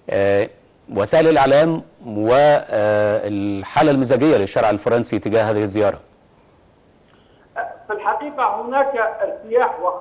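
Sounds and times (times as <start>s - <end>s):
man talking over video call: 0.0s - 6.1s
faint line hiss: 0.0s - 10.0s.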